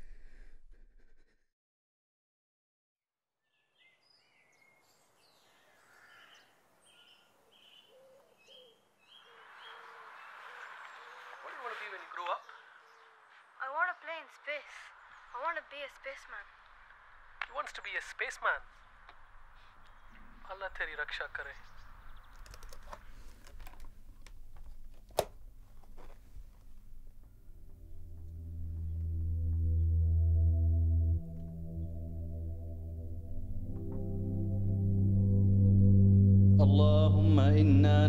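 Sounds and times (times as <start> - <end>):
high bird chirps: 3.4 - 11.6
low cooing bird notes: 5.5 - 11.6
faint irregular clicks: 22.3 - 25.4
low steady hum: 26.6 - 38.0.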